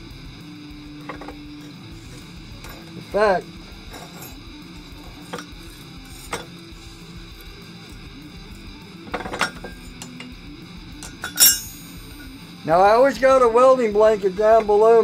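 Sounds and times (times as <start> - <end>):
background music: 0.0 - 15.0
metal clinks and clatter: 2.6 - 3.1, 3.8 - 6.5, 11.0 - 12.3.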